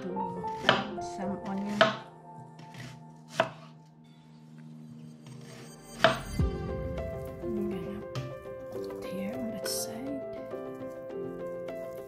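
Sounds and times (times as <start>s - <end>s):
knife chopping onion on board: 0.5s - 3.7s.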